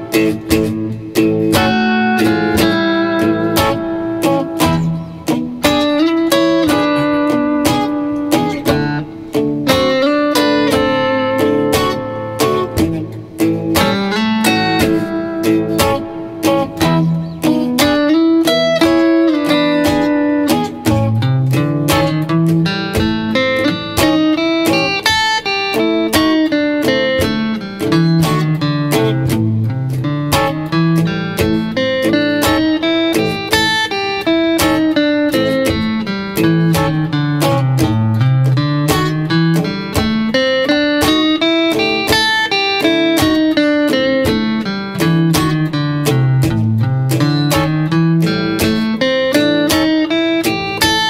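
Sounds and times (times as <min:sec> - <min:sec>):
electric guitar blues riff: 0:00.0 - 0:51.0
lead guitar blues notes: 0:00.0 - 0:51.0.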